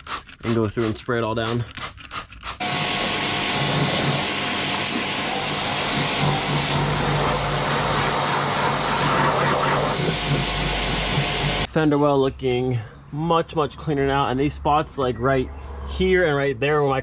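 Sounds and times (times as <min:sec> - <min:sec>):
water jet hissing: 0:02.5 - 0:11.7
pressure washer motor hum: 0:02.6 - 0:11.7.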